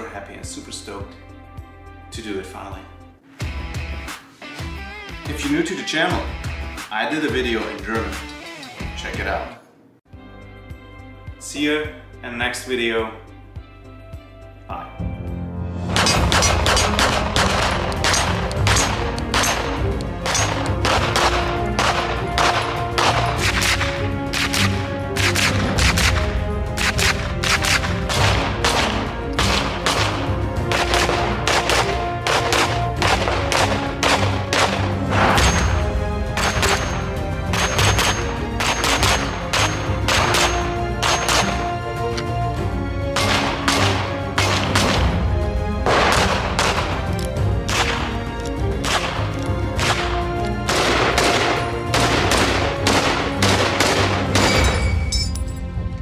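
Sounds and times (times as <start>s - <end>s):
background music: 0.0s - 56.0s
carbine gunfire single shots: 15.9s - 35.0s, 37.5s - 41.8s, 43.1s - 45.2s, 45.8s - 48.2s, 48.8s - 54.9s
gunshots: 15.9s - 41.8s, 43.1s - 45.2s, 45.8s - 48.2s, 48.8s - 55.1s.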